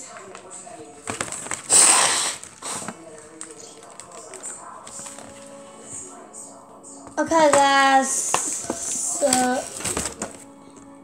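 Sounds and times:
plastic packaging crinkling: 0.0s - 5.9s, 8.2s - 10.5s
faint voices: 0.0s - 10.4s.

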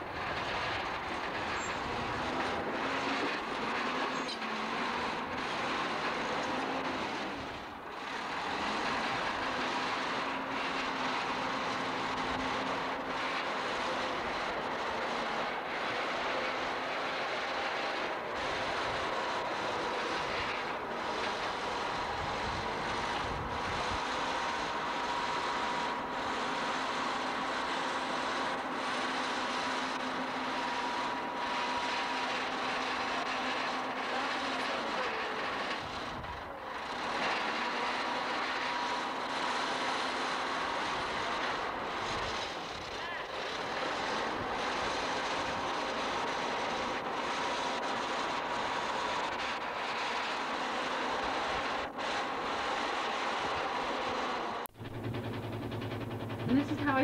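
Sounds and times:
bulldozer diesel engine running: 0.0s - 57.0s.

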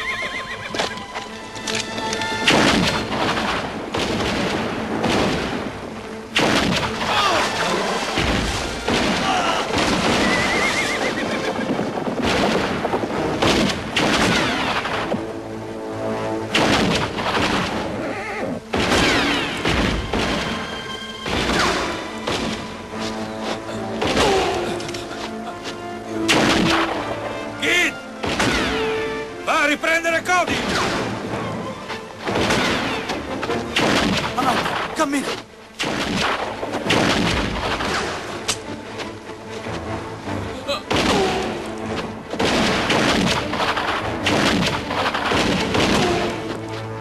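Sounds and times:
horse whinnying: 0.0s - 0.9s, 9.6s - 11.8s, 18.0s - 18.6s
background music: 0.0s - 47.0s
gunshots: 2.4s - 5.7s, 6.3s - 7.6s, 8.2s - 10.7s, 12.2s - 15.2s, 16.5s - 17.9s, 18.7s - 20.6s, 26.3s - 27.1s, 28.2s - 28.8s, 30.5s - 31.2s, 33.7s - 35.2s, 35.8s - 38.4s, 40.9s - 41.6s, 42.3s - 46.4s.

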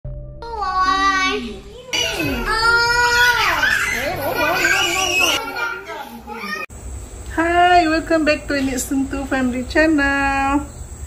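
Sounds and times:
young child crying out: 2.0s - 5.4s.

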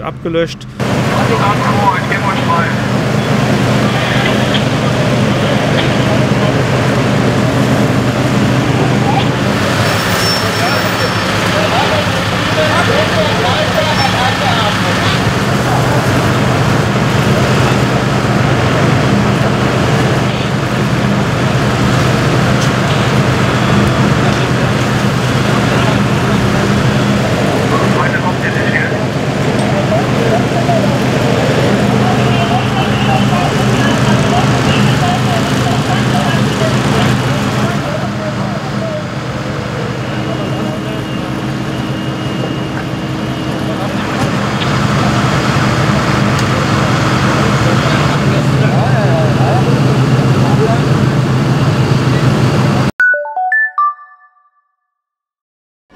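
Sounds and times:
fire engines and pumps humming: 0.0s - 52.9s
firefighters' voices: 0.0s - 52.9s.

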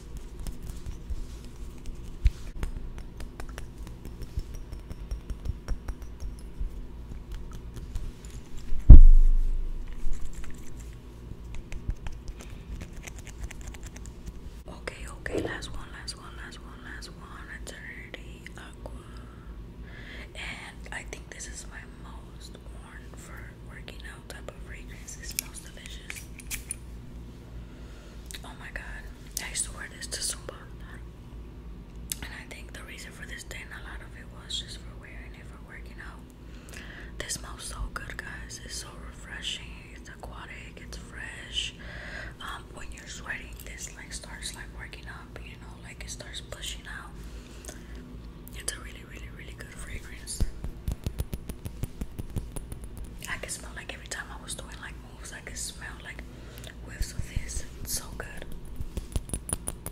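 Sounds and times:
person whispering: 14.7s - 19.0s, 48.5s - 50.5s, 53.2s - 58.5s.

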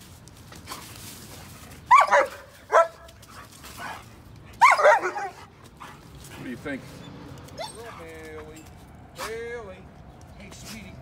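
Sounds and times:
dog barking: 1.9s - 3.1s, 4.6s - 5.5s.

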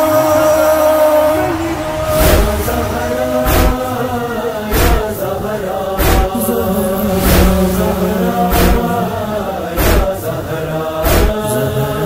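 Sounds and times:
voices chanting: 0.0s - 12.0s
chest-beat thumps: 6.0s - 9.2s.

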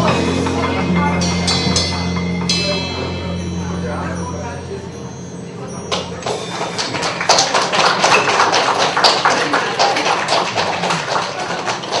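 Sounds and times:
voices: 0.0s - 12.0s
audience applauding: 5.9s - 12.0s.

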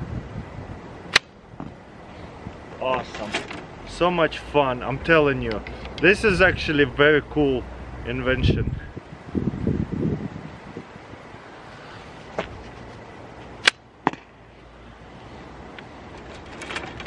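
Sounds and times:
rustling: 11.7s - 13.6s, 15.9s - 17.0s.

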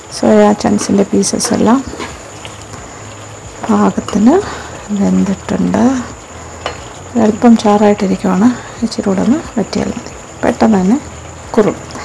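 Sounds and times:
woman speaking: 0.1s - 2.1s, 3.6s - 6.1s, 7.1s - 12.0s
ladle stirring in a pan: 0.4s - 5.0s, 6.2s - 7.1s.

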